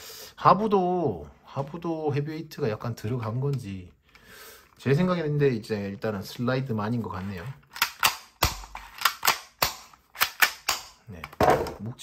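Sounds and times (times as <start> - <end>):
plastic pistol clicks: 7.7 - 11.0.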